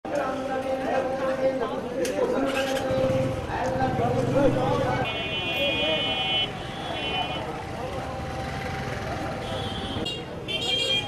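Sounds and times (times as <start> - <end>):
traffic noise: 0.1 - 11.0.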